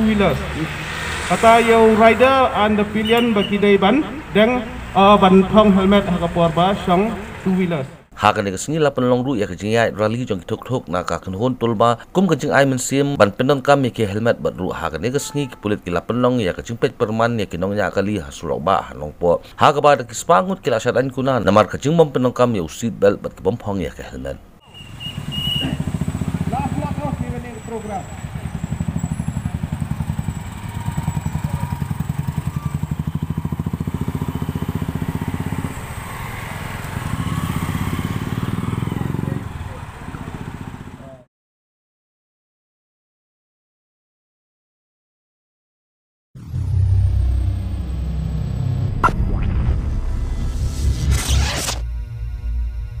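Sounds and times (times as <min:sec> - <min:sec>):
motorcycle engines throbbing: 0:00.0 - 0:08.1, 0:24.6 - 0:41.3, 0:46.4 - 0:53.0
deep bass: 0:46.4 - 0:53.0
swishing whoosh effect: 0:46.4 - 0:53.0.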